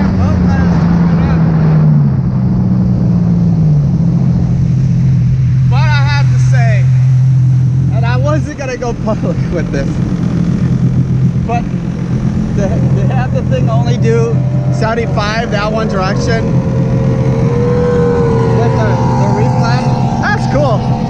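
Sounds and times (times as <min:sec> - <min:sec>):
jet ski engine drone: 0:00.0 - 0:21.0
wind: 0:00.0 - 0:21.0.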